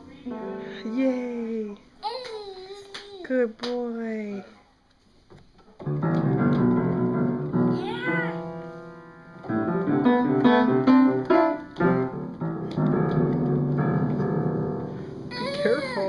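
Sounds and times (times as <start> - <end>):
toddler banging piano keys: 15.3 - 16.0.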